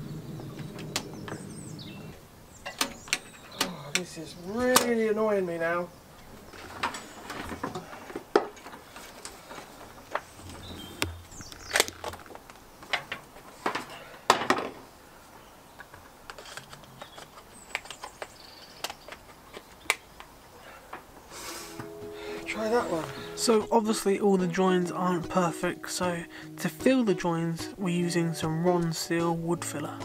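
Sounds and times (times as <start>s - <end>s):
faint bird chirps: 0.0s - 4.5s, 10.3s - 11.9s
clicks and knocks of plugs: 4.7s - 5.0s.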